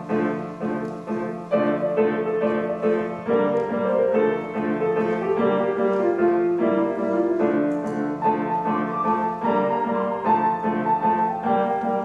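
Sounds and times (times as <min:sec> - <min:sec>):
grand piano playing: 0:00.0 - 0:12.0.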